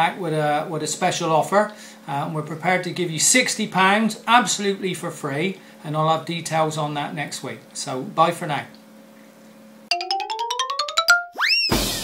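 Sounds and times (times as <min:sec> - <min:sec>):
quick plucked notes climbing: 0:09.9 - 0:11.4
rising boing glide: 0:09.9 - 0:11.4.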